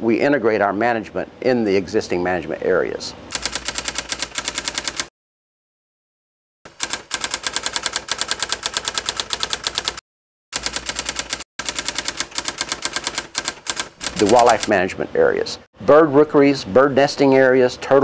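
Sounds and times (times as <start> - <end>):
typewriter keystroke clicks: 3.3 - 5.1, 10.6 - 14.8.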